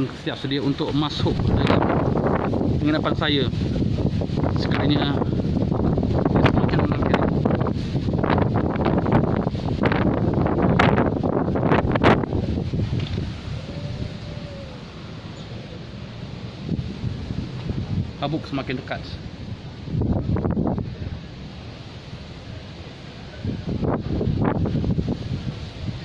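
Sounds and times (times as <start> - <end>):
gusty wind buffeting microphone: 0.0 - 26.0
leaves rustling: 0.0 - 26.0.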